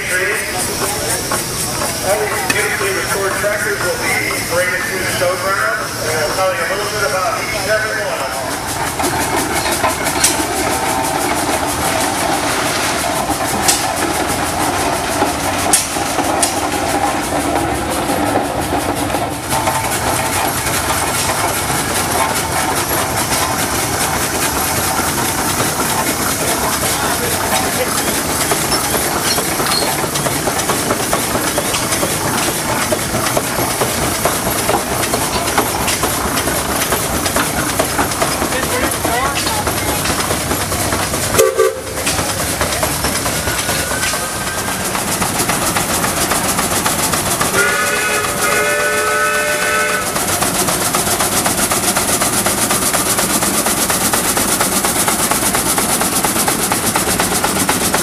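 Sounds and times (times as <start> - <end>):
steam engine working rhythmically: 0.0 - 58.0
steam hissing: 0.0 - 58.0.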